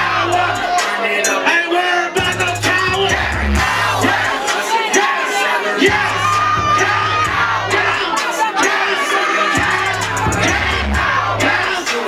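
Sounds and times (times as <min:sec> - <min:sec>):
crowd shouting and yelling: 0:00.0 - 0:12.0
loud hip-hop beat: 0:00.0 - 0:12.0.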